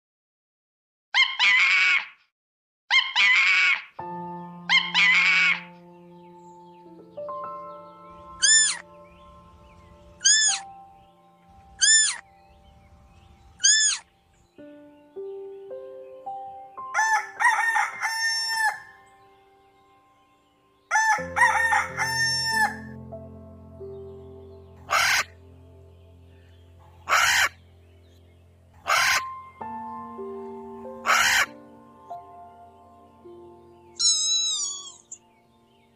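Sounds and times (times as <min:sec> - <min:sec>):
animal call: 0:01.2 - 0:02.2, 0:02.9 - 0:04.0, 0:04.7 - 0:05.8, 0:08.4 - 0:08.8, 0:10.2 - 0:10.7, 0:11.8 - 0:12.2, 0:13.6 - 0:14.1, 0:24.9 - 0:25.4, 0:27.0 - 0:27.6, 0:28.8 - 0:29.3, 0:31.0 - 0:31.6, 0:34.0 - 0:35.2
music with held notes: 0:04.0 - 0:35.9
rooster crowing: 0:17.0 - 0:19.0, 0:20.9 - 0:23.0.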